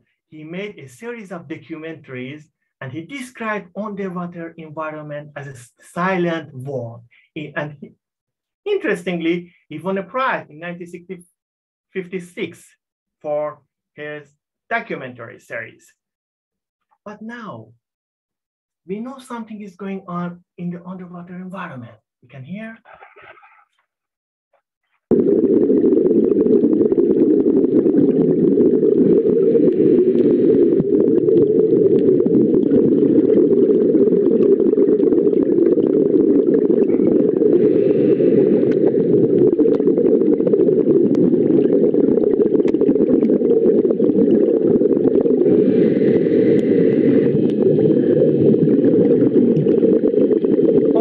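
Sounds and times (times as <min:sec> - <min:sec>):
dense low underwater noise: 0:25.1 - 0:51.0
crackle of fine clicks: 0:38.6 - 0:45.6.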